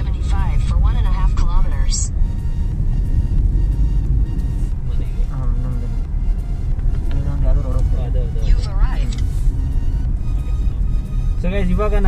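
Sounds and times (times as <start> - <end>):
car engine rumble: 0.0 - 12.0
tyres on road: 0.0 - 12.0.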